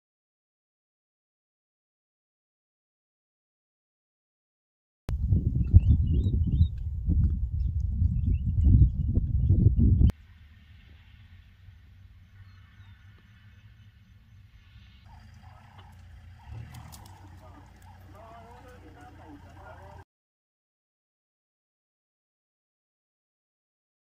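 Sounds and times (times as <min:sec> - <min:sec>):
wind buffeting microphone: 0:05.1 - 0:10.1
faint bird chirps: 0:11.8 - 0:19.3.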